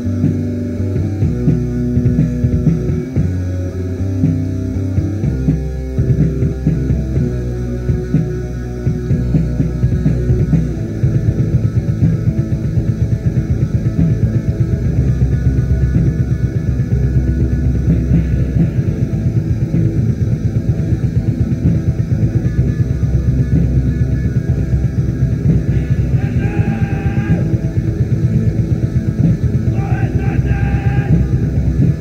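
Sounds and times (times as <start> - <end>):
lo-fi black metal band: 0.0 - 32.0.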